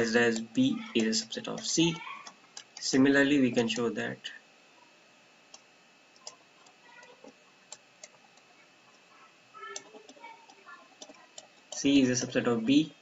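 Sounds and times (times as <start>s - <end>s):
faint high whine: 0.0s - 13.0s.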